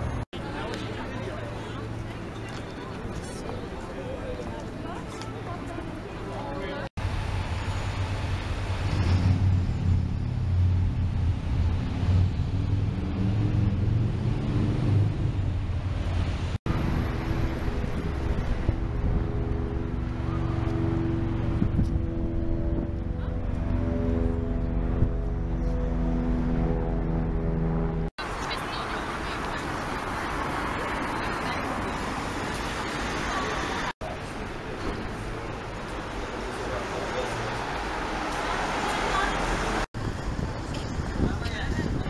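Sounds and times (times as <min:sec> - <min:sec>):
vehicles rumbling past: 0:00.0 - 0:42.0
low droning tones: 0:16.7 - 0:28.1.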